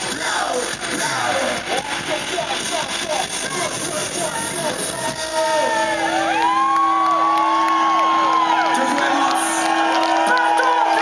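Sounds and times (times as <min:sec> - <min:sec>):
concert crowd cheering: 0:00.0 - 0:11.0
crowd whistles: 0:05.5 - 0:11.0.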